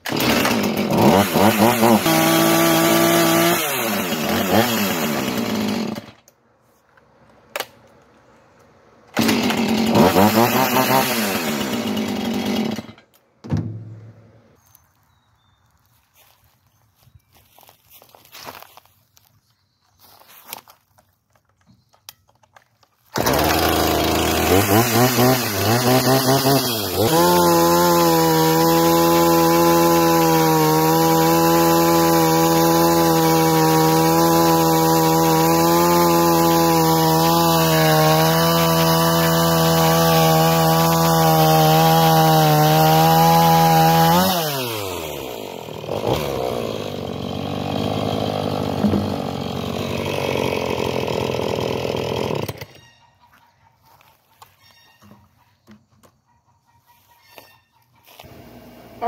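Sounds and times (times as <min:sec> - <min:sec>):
chainsaw revving and cutting log: 0:00.0 - 0:06.2, 0:09.1 - 0:13.1, 0:23.1 - 0:52.8, 0:58.2 - 0:59.0.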